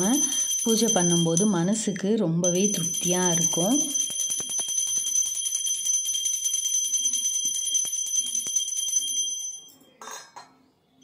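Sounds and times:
hand bell ringing rapidly: 0.0 - 1.6, 2.4 - 9.7.

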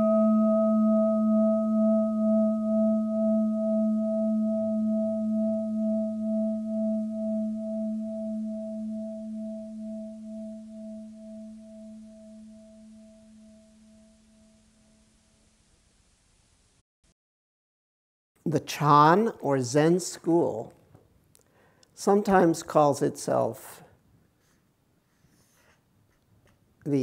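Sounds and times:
meditation bowl ringing: 0.0 - 15.5.

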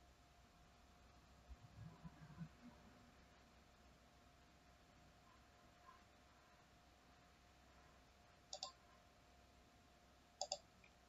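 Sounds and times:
faint steady hum: 0.0 - 11.0
computer mouse clicks: 8.5 - 8.8, 10.4 - 11.0.

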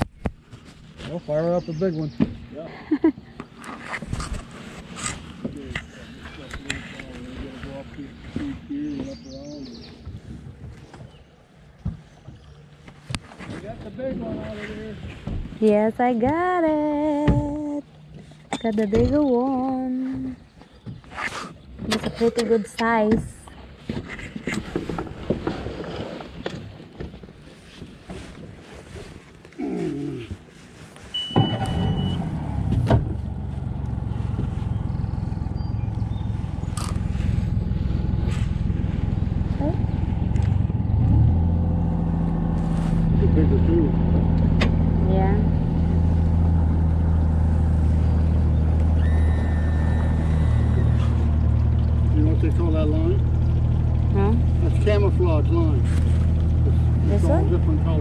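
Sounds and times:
outboard motor running: 0.0 - 58.0.

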